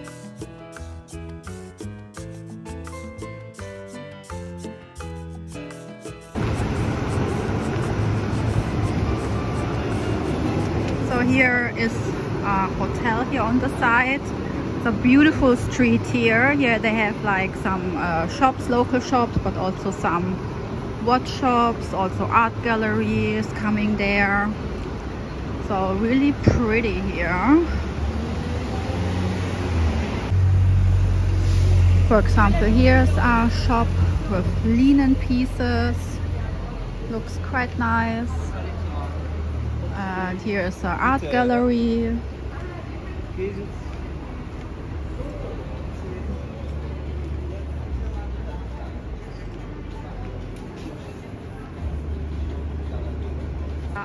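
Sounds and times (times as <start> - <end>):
background music: 0.0 - 7.4
street noise hiss: 0.0 - 54.0
street noise rumble: 0.0 - 54.0.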